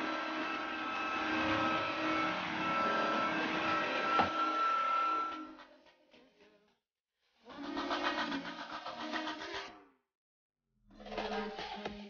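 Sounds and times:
floor washer running: 0.0 - 5.5.

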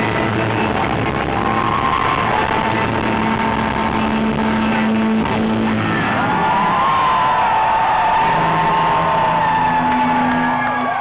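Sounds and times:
rock band playing loudly: 0.0 - 11.0.

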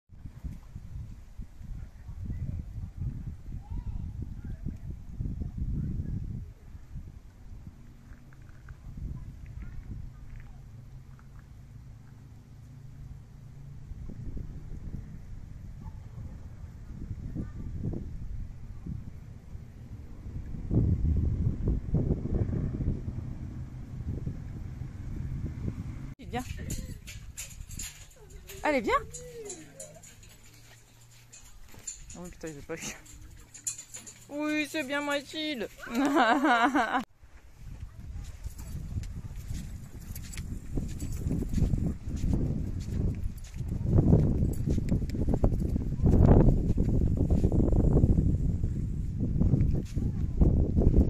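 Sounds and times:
wind buffeting microphone: 0.2 - 51.0
footsteps on pavement: 37.3 - 47.6.

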